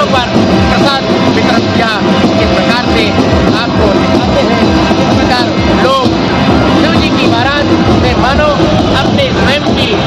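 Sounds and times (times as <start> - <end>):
band music with heavy drumbeats: 0.0 - 10.0
many overlapping voices: 0.0 - 10.0.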